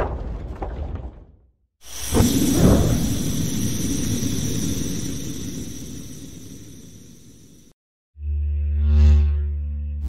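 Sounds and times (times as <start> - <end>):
steady hiss: 1.9 - 7.7
rumbling sound effect: 1.9 - 10.0.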